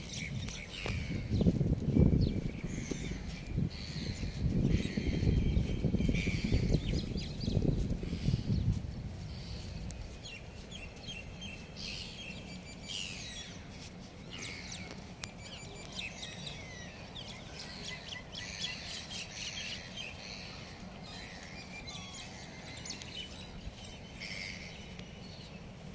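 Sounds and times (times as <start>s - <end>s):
birds chirping: 0.0s - 25.9s
low background noise: 0.0s - 25.9s.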